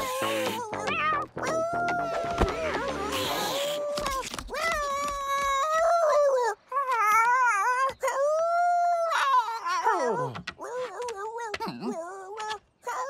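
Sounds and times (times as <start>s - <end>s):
cartoon dog howling: 0.0s - 13.0s.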